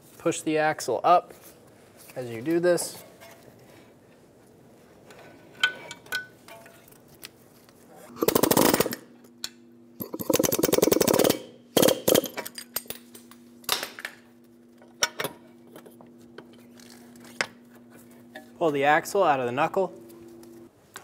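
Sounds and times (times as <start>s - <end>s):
pneumatic air hammer rattling: 8.1s - 9.1s, 10.0s - 12.8s.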